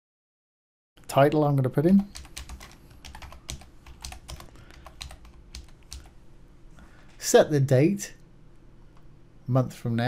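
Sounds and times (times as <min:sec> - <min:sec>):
computer keyboard typing: 0:02.0 - 0:06.2.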